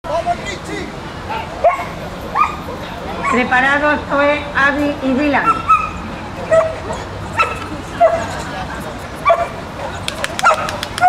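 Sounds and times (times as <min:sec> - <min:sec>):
people's voices in background: 0:00.1 - 0:11.0
dog barking and yipping: 0:01.3 - 0:03.5, 0:05.4 - 0:08.3, 0:09.2 - 0:11.0.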